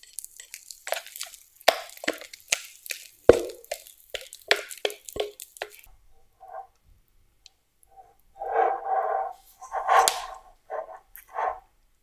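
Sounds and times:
metal tin scraping on counter: 0:08.4 - 0:11.6.

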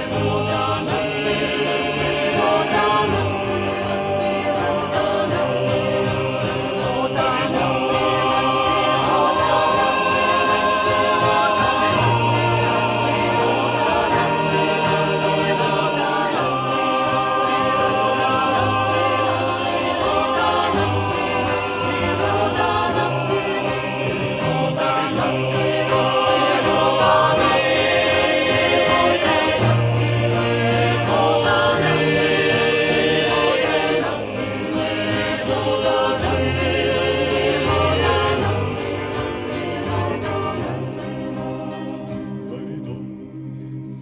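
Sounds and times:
acoustic guitars: 0:00.0 - 0:44.0
mixed choir singing: 0:00.0 - 0:44.0.

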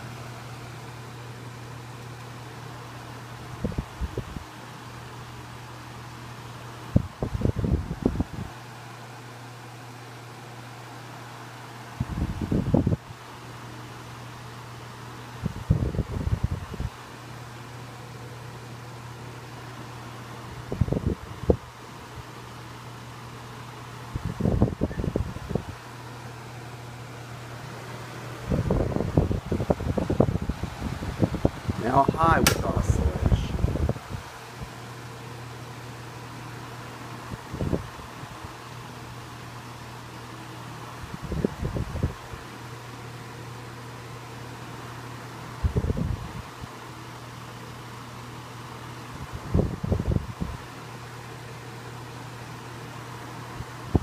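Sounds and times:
desk fan motor hum: 0:00.0 - 0:54.0
fan air rushing: 0:00.0 - 0:54.0
air gust on microphone: 0:06.8 - 0:08.7, 0:11.9 - 0:13.1, 0:15.3 - 0:17.0, 0:20.5 - 0:21.7, 0:24.1 - 0:25.9, 0:27.6 - 0:34.7, 0:41.0 - 0:42.4, 0:49.0 - 0:50.6.

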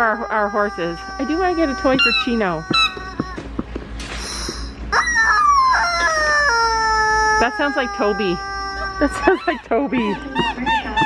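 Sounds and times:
rubber chicken toy squawking: 0:00.4 - 0:03.4, 0:04.9 - 0:11.0.

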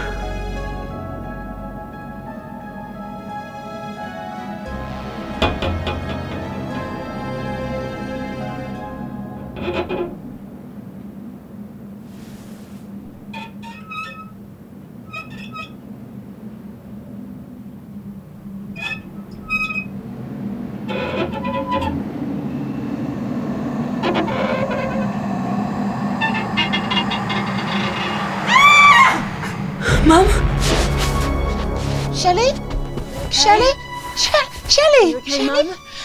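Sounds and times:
deep bass hit: 0:00.0 - 0:03.8, 0:04.7 - 0:10.5, 0:25.9 - 0:34.1
low drone: 0:00.0 - 0:11.8, 0:17.4 - 0:36.0
loud shrill glide: 0:18.8 - 0:30.2.

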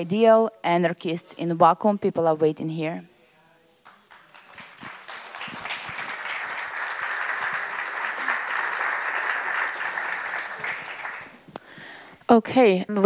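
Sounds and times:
audience applauding: 0:03.8 - 0:11.4.

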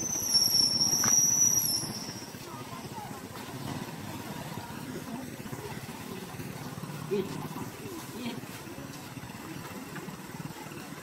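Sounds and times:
faint outdoor background noise: 0:00.0 - 0:11.0.

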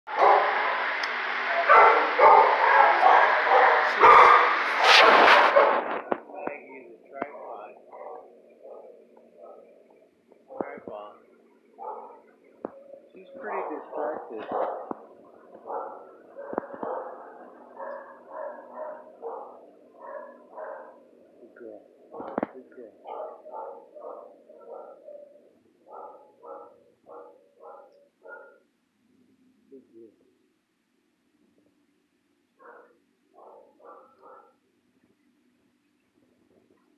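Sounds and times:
dogs barking: 0:00.1 - 0:06.1, 0:07.2 - 0:10.9, 0:11.8 - 0:21.2, 0:22.1 - 0:28.7, 0:32.6 - 0:34.6.

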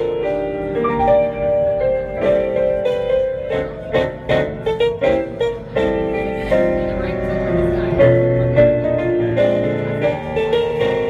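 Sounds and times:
solo piano playing: 0:00.0 - 0:11.0.

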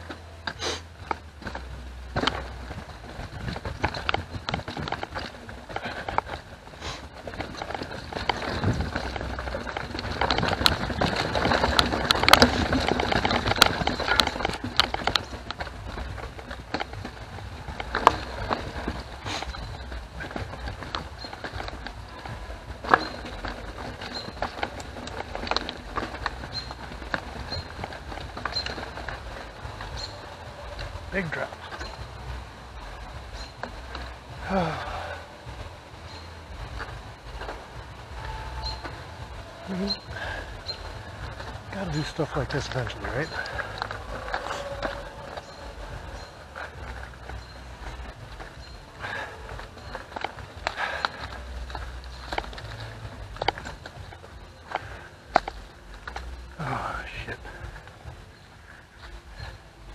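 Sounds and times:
bike rattling and knocking: 0:00.0 - 0:59.9
bike tyres on dirt trail: 0:00.0 - 0:59.9.

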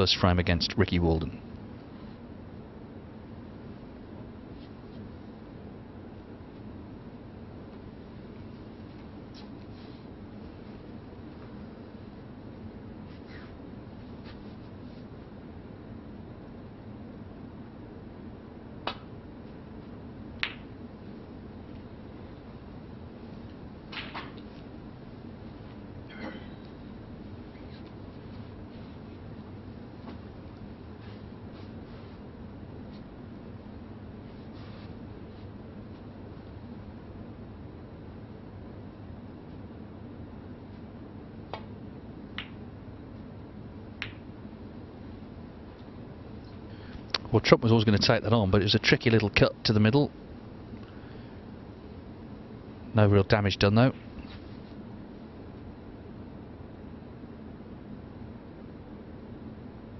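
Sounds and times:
cue tip striking ball: 0:20.4 - 0:20.7, 0:23.9 - 0:24.4, 0:44.0 - 0:44.3
snooker balls clicking: 0:20.4 - 0:20.7, 0:23.9 - 0:24.5, 0:42.3 - 0:42.6, 0:44.0 - 0:44.3
cue striking ball click: 0:44.0 - 0:44.3.

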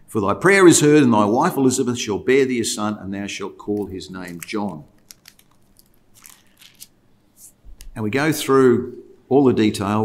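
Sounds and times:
small clicks and rustles: 0:03.8 - 0:06.9.

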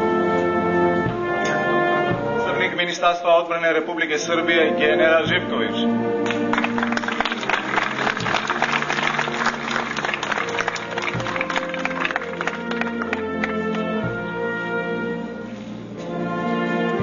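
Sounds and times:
band music with held notes: 0:00.0 - 0:17.0
applause: 0:06.2 - 0:13.9.

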